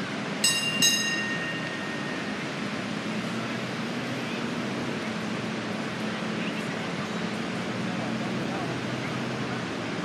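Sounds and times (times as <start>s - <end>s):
small metal bell ringing: 0.4s - 2.4s.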